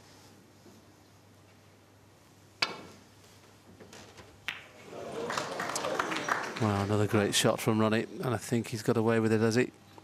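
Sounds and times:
audience noise: 4.8s - 7.3s.

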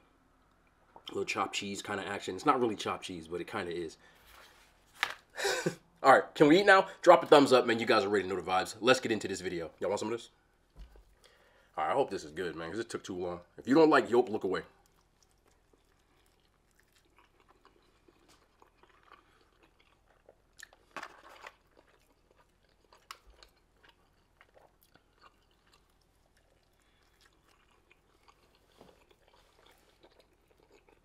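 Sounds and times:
man chewing food: 14.7s - 31.0s.

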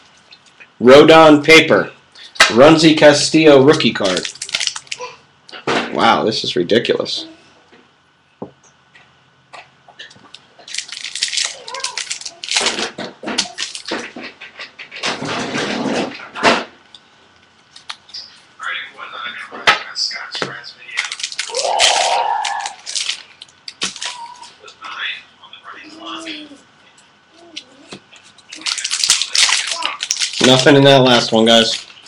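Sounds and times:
wrappers crackling: 3.7s - 5.2s, 10.3s - 14.2s, 20.9s - 24.6s, 27.5s - 32.0s.

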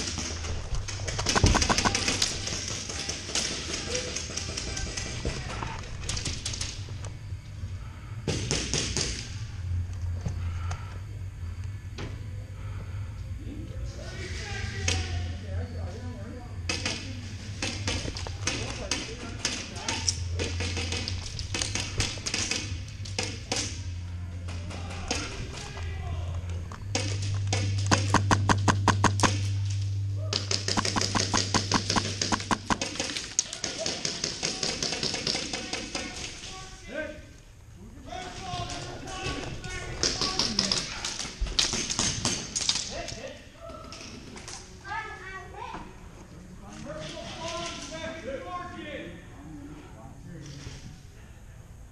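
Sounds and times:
low hum: 0.0s - 33.4s
airsoft gunfire: 1.1s - 5.1s, 26.9s - 29.5s, 30.4s - 36.2s.

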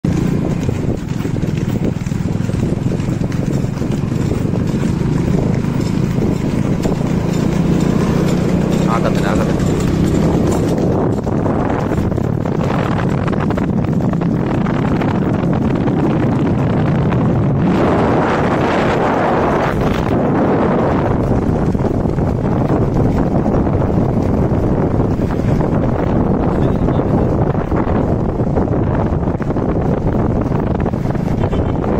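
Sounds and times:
motorcycle engine running: 0.0s - 31.9s
wind rushing over microphone: 0.0s - 31.9s
voices: 8.7s - 10.0s.

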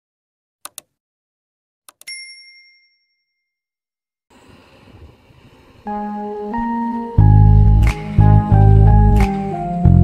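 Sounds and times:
mouse click: 0.7s - 0.9s
bright bell ding: 2.0s - 3.6s
music: 5.9s - 10.0s.

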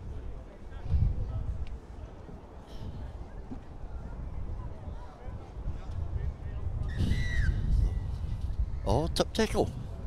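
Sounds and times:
wind on microphone: 0.0s - 10.0s
man speaking: 8.9s - 9.7s.

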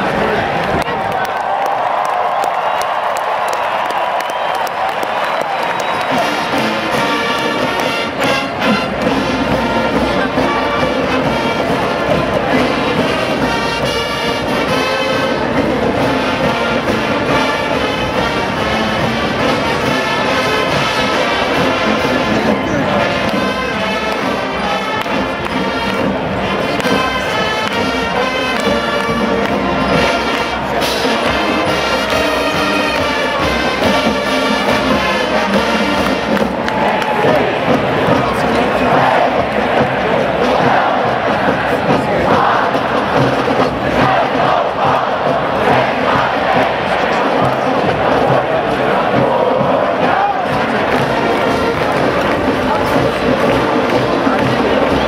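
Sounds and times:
stadium crowd cheering and shouting: 0.0s - 55.0s
marching band brass playing: 2.4s - 55.0s.

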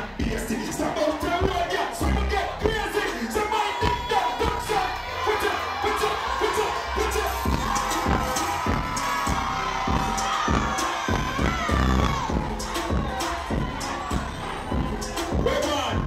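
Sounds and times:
club music with bass beat: 0.0s - 16.0s
crowd cheering and shouting: 0.0s - 16.0s.

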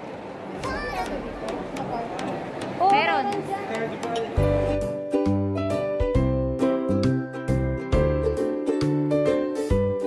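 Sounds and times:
shopping mall hubbub: 0.0s - 5.2s.

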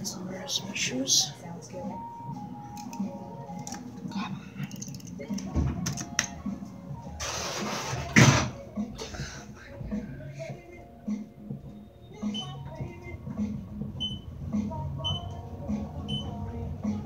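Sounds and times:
soft background music: 0.0s - 17.0s.

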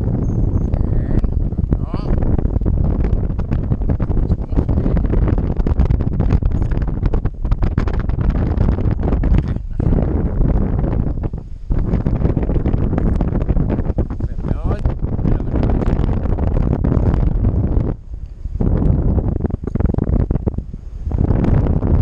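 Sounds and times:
wind rushing over microphone: 0.0s - 22.0s.

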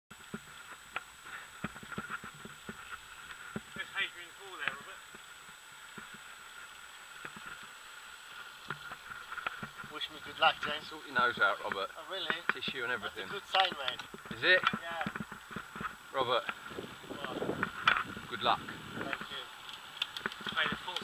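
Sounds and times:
steady hiss: 0.1s - 21.0s
bike rattling over road: 8.4s - 21.0s.

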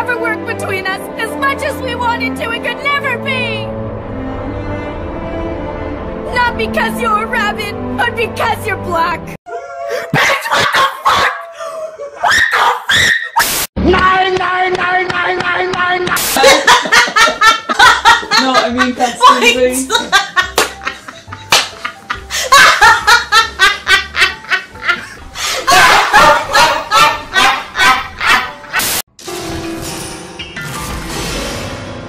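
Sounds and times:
dog barking and yelping: 9.8s - 13.4s
loud character laughter: 9.9s - 12.4s, 16.4s - 18.5s, 21.8s - 28.9s.

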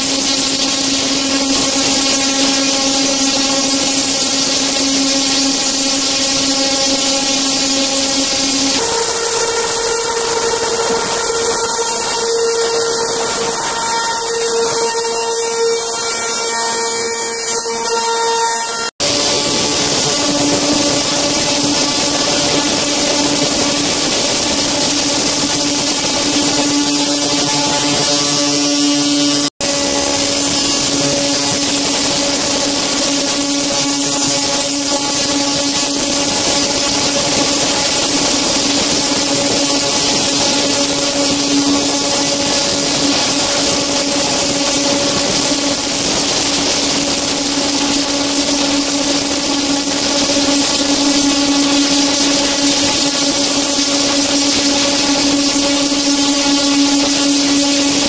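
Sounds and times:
ultrasonic cleaner humming: 0.0s - 58.0s.

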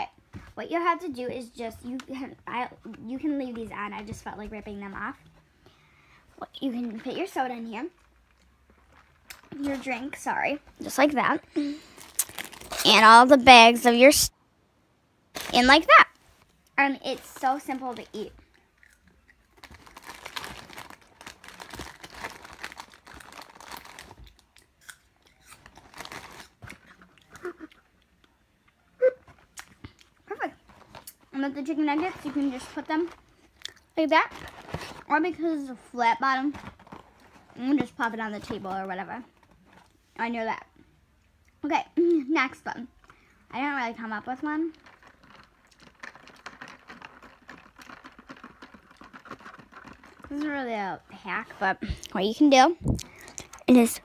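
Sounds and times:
paper and plastic bags crinkling: 6.6s - 14.3s, 15.4s - 18.5s, 19.4s - 24.5s, 25.4s - 27.6s, 29.3s - 35.4s, 36.3s - 40.0s, 44.7s - 50.6s.

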